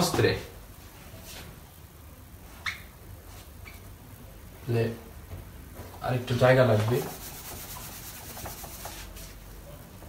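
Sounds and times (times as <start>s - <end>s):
eraser scrubbing whiteboard: 6.7s - 9.4s.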